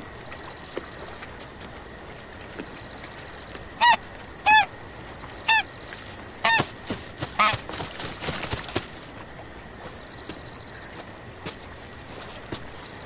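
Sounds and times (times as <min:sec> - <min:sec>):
goose honking: 0:03.8 - 0:04.7, 0:06.4 - 0:06.7, 0:07.4 - 0:07.6.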